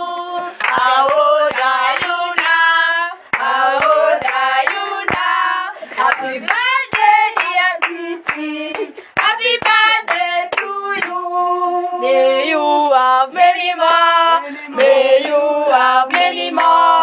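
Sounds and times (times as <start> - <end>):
group of people singing: 0.0 - 17.0
hands clapping: 0.6 - 2.7, 3.3 - 5.4, 6.0 - 11.2, 14.8 - 15.4, 16.0 - 16.8.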